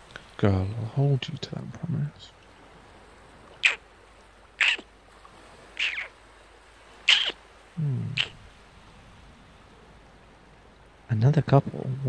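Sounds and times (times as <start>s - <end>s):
faint steady hiss: 0.0s - 12.0s
high animal calls falling in pitch: 3.6s - 3.8s, 4.6s - 4.9s, 5.8s - 6.2s, 7.0s - 8.4s.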